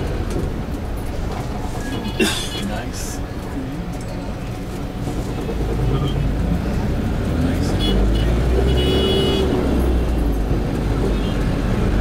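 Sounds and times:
minibus engine and road rumble: 0.0s - 12.0s.

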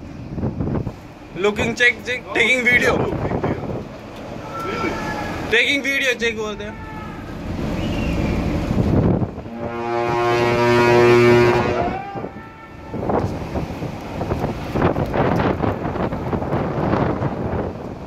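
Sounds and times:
wind buffeting microphone: 0.0s - 5.6s, 6.4s - 18.0s
rough sea: 0.0s - 18.0s
ship's horn deep blast: 4.3s - 13.8s.

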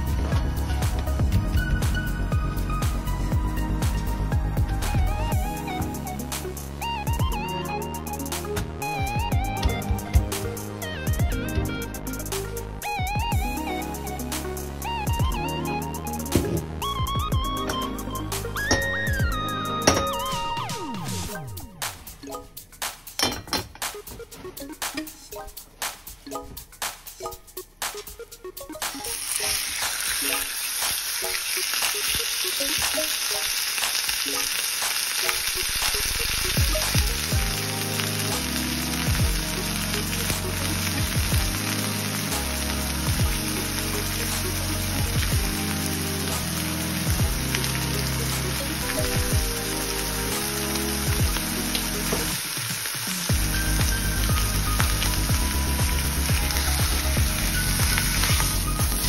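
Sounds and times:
background music with stepping bass: 0.0s - 31.0s, 34.8s - 59.0s
meat sizzling in a frying pan: 29.1s - 59.0s.

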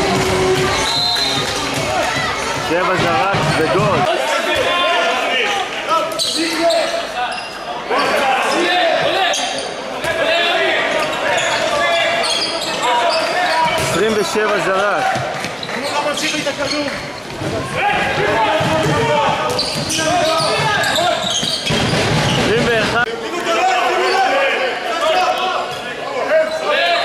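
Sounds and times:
players shouting: 17.5s - 27.0s.

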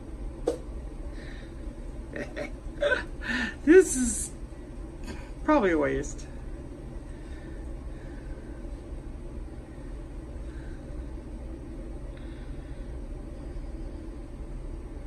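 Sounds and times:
low background rumble and hum: 0.0s - 15.0s.

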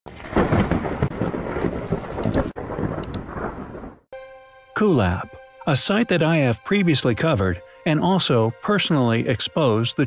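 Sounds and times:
rain: 0.1s - 4.0s
thunder rumbling and crackling: 0.1s - 4.1s.

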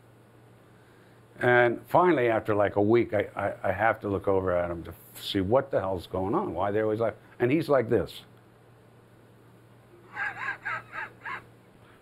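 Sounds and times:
high-pitched laughter: 10.0s - 11.5s.

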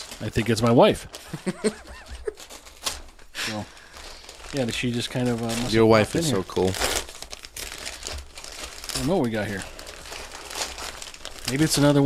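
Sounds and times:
gift packaging crinkling: 0.0s - 12.0s.

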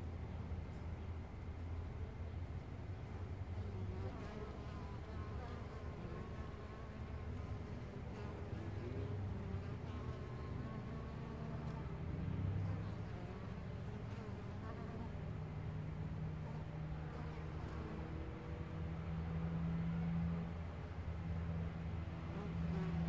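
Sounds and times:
honey bees buzzing: 1.4s - 23.0s.

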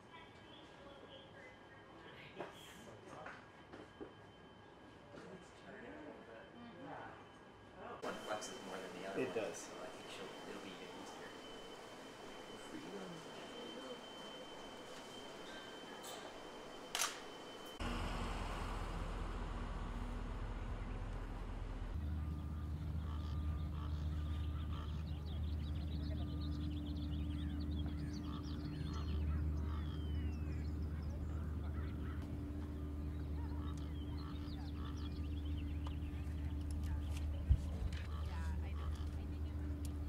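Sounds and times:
steady low hum: 0.0s - 40.0s
sharp click: 16.9s - 17.3s
bird calls and chirps: 22.0s - 40.0s.

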